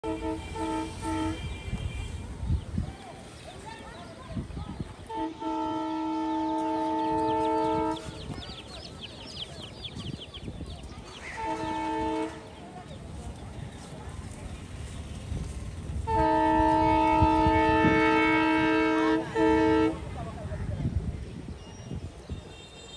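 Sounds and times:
train horn blasts: 0.0s - 2.4s, 5.1s - 8.2s, 11.4s - 12.5s, 16.0s - 20.1s.

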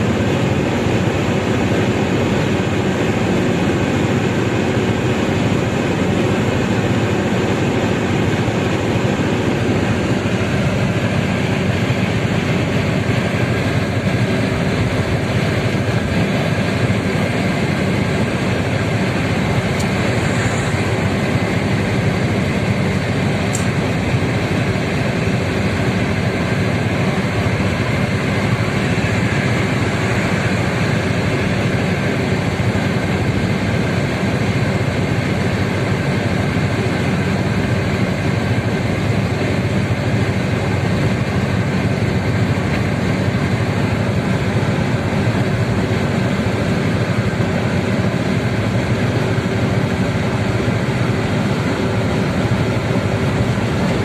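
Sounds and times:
car engine rumble: 0.0s - 54.0s
tyres rumbling on road: 0.0s - 54.0s.

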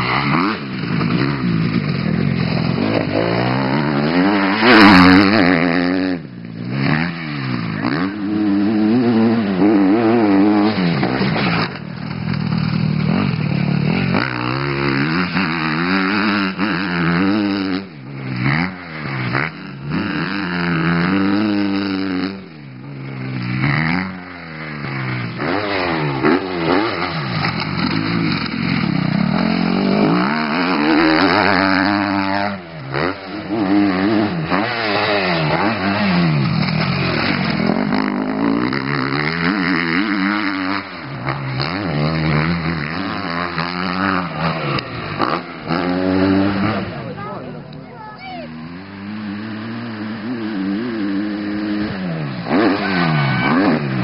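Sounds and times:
motocross bike engine revving: 0.0s - 54.0s.

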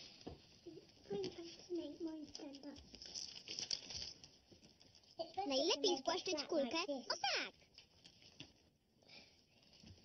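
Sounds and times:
cardboard rustling and crinkling: 1.1s - 5.1s.

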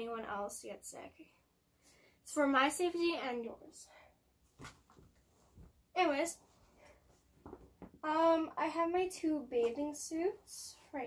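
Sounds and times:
cloth hoodie rustling: 4.4s - 8.0s.

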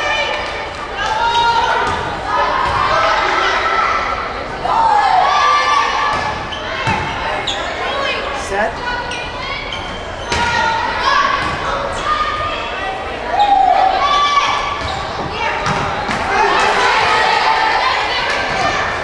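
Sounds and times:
players calling and shouting: 0.0s - 19.0s.

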